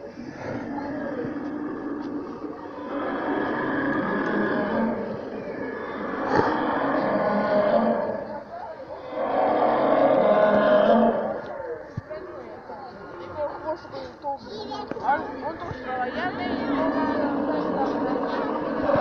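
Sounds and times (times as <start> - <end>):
people's voices: 0.0 - 19.0
recorded dinosaur roars: 0.1 - 11.8, 16.0 - 19.0.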